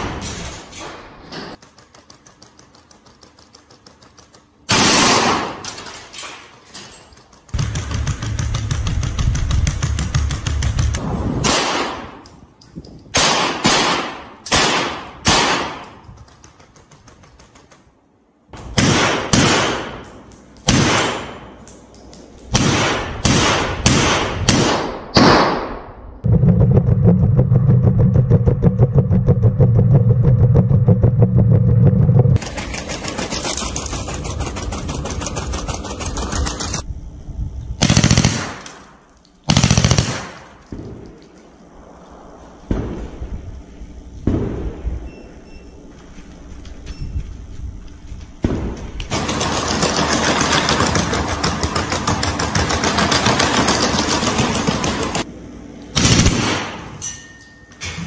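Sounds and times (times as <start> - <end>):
machine gun automatic fire: 1.5 - 12.2, 32.4 - 36.8, 37.8 - 41.3, 48.5 - 55.3, 56.0 - 56.8
single gunshots: 11.0 - 12.2, 13.2 - 15.8, 20.7 - 21.5, 22.5 - 25.9.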